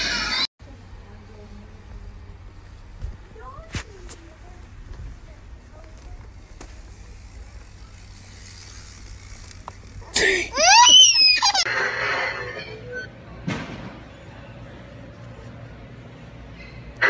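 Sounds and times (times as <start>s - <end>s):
toddler squealing: 10.5s - 11.7s.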